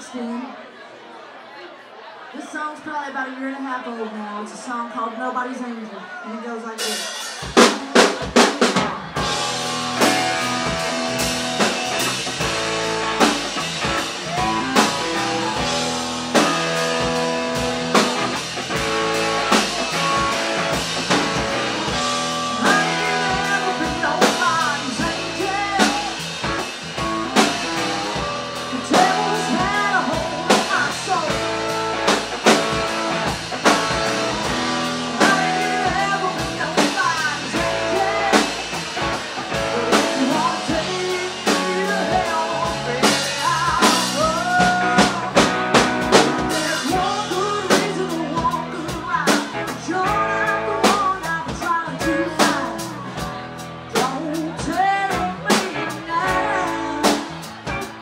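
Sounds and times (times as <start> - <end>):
acoustic and electric guitars: 6.8 - 58.0
drum kit: 6.8 - 58.0
bass guitar: 7.3 - 58.0
woman singing lead vocal: 22.4 - 26.2, 28.6 - 32.1, 35.1 - 58.0.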